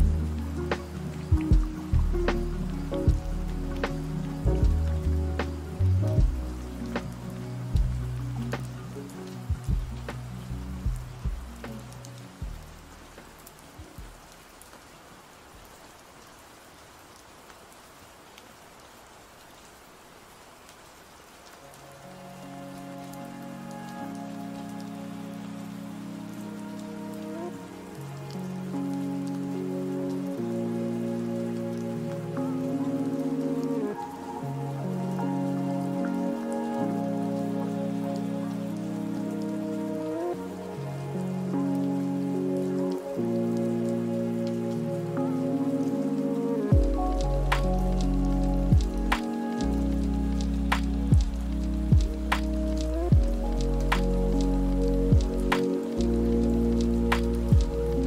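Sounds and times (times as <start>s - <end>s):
mellow lofi music: 0.0s - 14.9s, 21.1s - 58.0s
steady rain falling: 0.0s - 58.0s.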